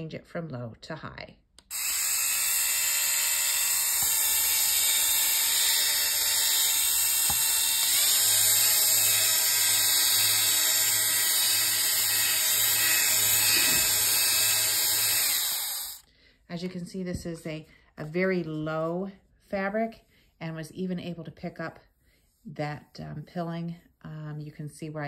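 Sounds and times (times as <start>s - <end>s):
fabric shaver motor whirring: 1.6s - 16.0s.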